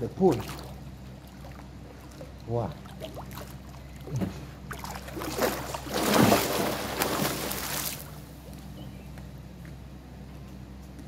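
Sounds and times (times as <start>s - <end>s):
low steady hum: 0.0s - 11.0s
swimmer splashing in pool: 0.3s - 8.3s.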